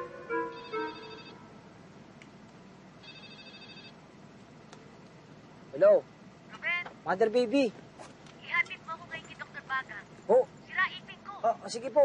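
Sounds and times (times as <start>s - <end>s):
telephone ringing: 0.0s - 1.4s, 3.0s - 4.0s.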